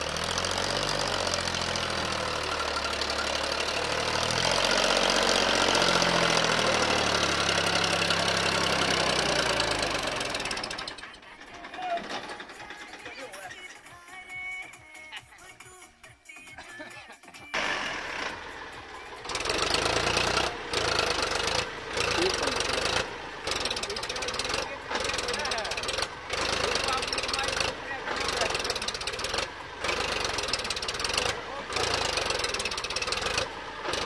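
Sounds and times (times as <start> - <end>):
tractor diesel engine under load: 0.0 - 14.6, 17.5 - 34.0.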